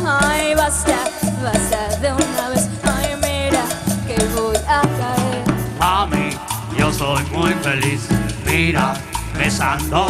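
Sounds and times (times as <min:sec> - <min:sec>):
dance band playing: 0:00.0 - 0:10.0.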